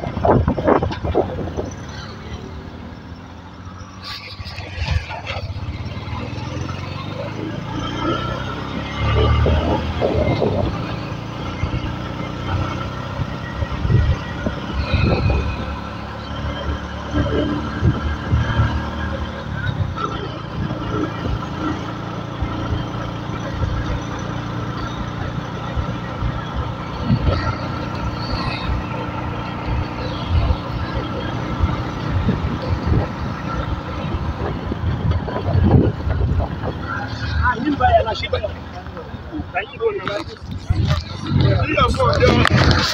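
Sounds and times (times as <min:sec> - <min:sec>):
vehicle running: 0:00.0 - 0:42.9
indistinct voices: 0:26.5 - 0:42.9.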